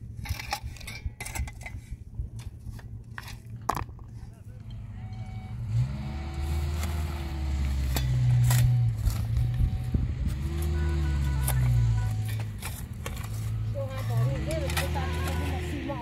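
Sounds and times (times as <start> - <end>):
shovel scraping stony soil: 0.0 - 3.5, 5.8 - 16.0.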